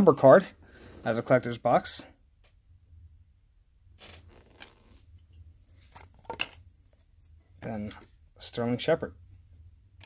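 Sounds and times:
cards rustling: 0:04.0 - 0:05.0.

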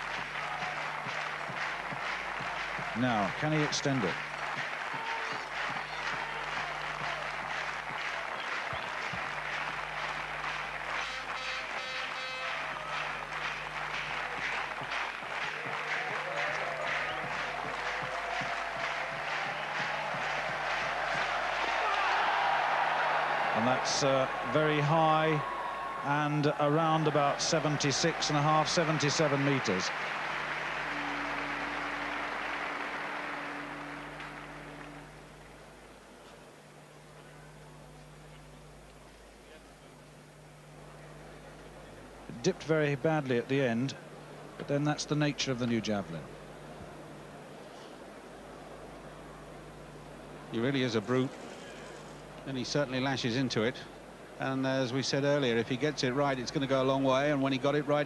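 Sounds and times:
crowd clapping in rhythm: 0:00.0 - 0:35.6
steady low hum: 0:00.0 - 0:58.0.

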